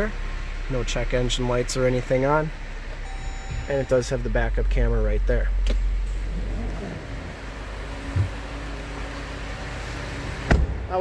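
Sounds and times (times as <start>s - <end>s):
car engine idling: 0.0s - 11.0s.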